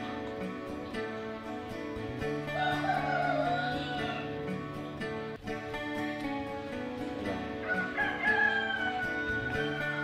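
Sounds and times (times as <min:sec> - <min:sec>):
background music: 0:00.0 - 0:10.0
rooster crowing: 0:02.5 - 0:04.4, 0:07.6 - 0:10.0.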